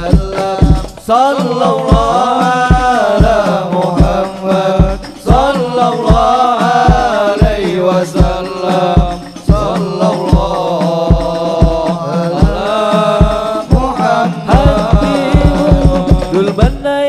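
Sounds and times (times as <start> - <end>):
deep bass drum beats: 0.0 - 17.0
frame drums: 0.0 - 17.0
men singing a chant: 0.0 - 17.0.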